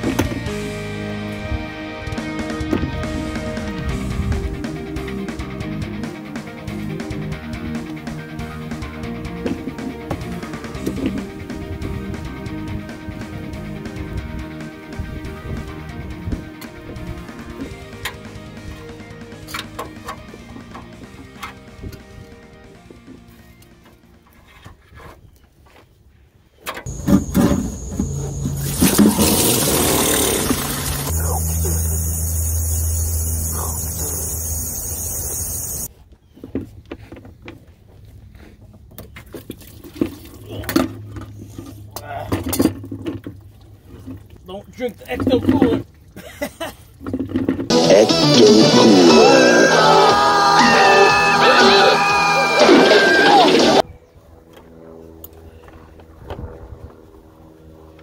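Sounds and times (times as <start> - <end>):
background music: 0.0 - 24.2, 47.7 - 53.8
fluid gushing into plastic bucket: 28.6 - 31.1.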